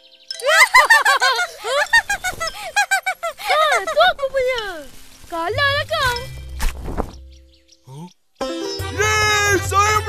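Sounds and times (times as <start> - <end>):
background music: 3.4 - 10.0
cartoon child's voice: 3.5 - 6.3.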